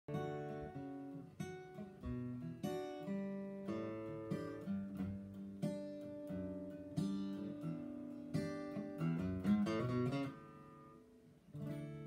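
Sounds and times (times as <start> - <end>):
acoustic guitar playing: 0.1 - 12.0.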